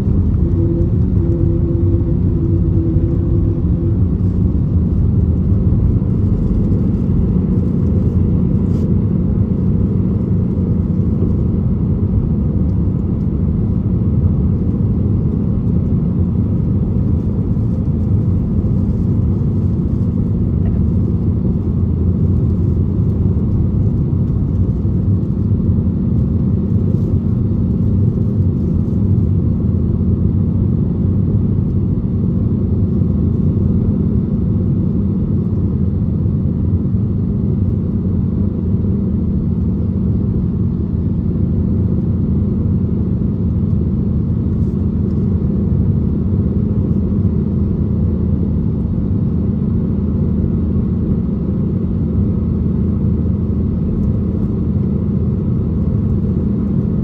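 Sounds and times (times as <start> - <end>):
jet engines rumbling: 0.0 - 57.0.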